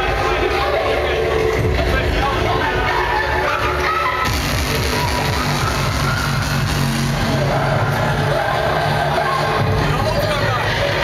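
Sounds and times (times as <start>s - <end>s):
drum and bass mix over sound system: 0.0s - 11.0s.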